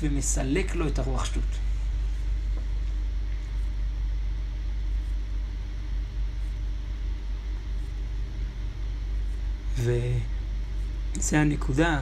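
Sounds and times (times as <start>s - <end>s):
low rumbling hum: 0.0s - 12.0s.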